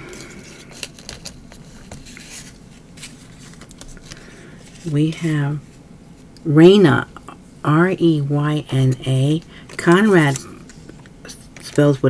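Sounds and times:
paper rustling: 0.1s - 5.0s.

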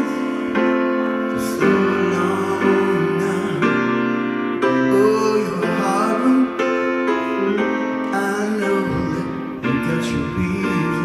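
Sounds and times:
piano ballad chords: 0.0s - 11.0s.

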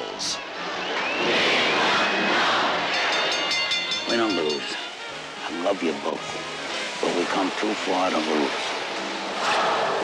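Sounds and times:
arena crowd cheering: 0.0s - 4.8s.

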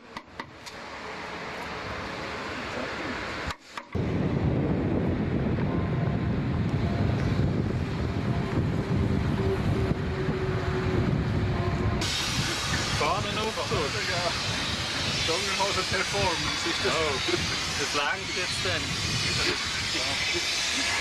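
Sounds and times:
road traffic on bridge: 0.0s - 21.0s
voices: 2.0s - 3.4s, 7.8s - 21.0s
wind on microphone: 4.0s - 21.0s
bright hiss: 12.0s - 21.0s.

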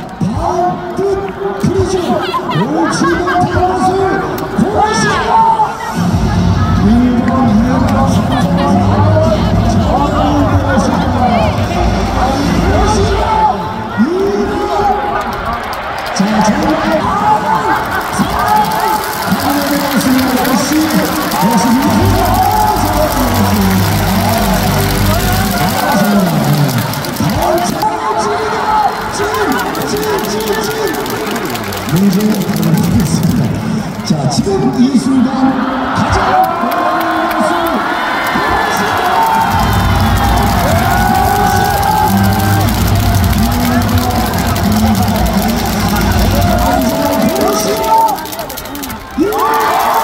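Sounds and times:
stadium crowd voices: 0.0s - 50.0s
music over public address: 4.6s - 13.9s.

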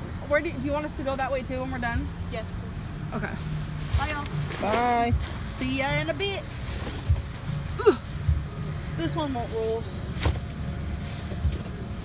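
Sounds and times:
grocery bags thumping: 3.8s - 8.5s, 10.1s - 12.0s.

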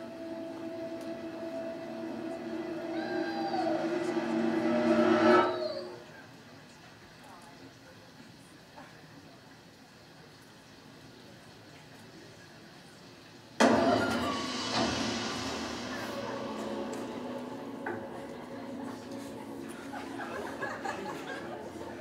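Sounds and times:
horror soundtrack over speakers: 0.0s - 6.1s, 13.6s - 22.0s
loud ringing music sting: 0.0s - 6.1s, 13.6s - 22.0s.

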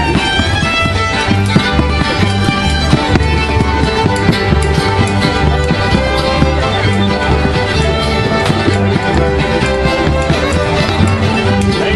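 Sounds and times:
string melody: 0.0s - 11.9s
upright bass beat: 0.0s - 11.9s.

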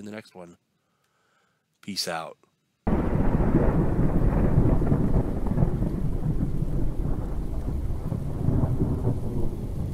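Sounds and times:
rain: 2.9s - 9.9s
rolling thunder: 2.9s - 9.9s.

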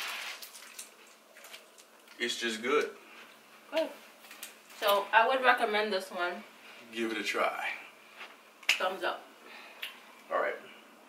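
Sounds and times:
wrapper crinkling: 0.0s - 2.3s.

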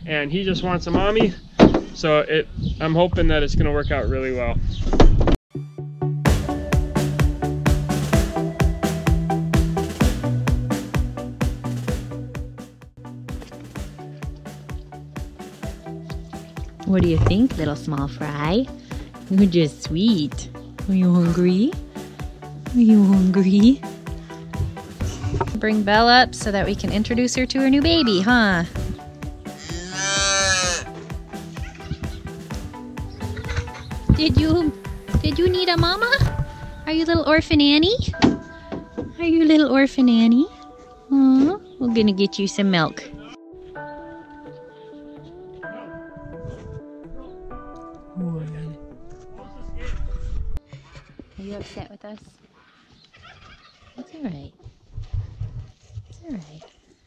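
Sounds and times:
low thumping rumbles: 0.6s - 5.4s, 16.1s - 29.5s, 31.0s - 40.1s
background music with beat: 5.5s - 39.2s
cattle bawling: 29.5s - 32.6s
cow mooing: 29.6s - 31.0s.

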